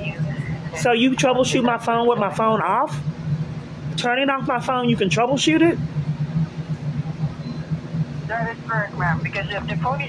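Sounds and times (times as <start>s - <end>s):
train car low hum: 0.0s - 10.0s.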